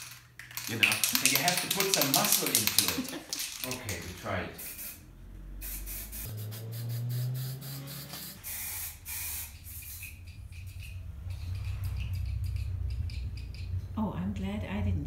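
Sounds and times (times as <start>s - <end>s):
spray can hissing bursts: 4.6s - 5.0s, 5.6s - 10.9s
low steady hum: 9.9s - 15.0s.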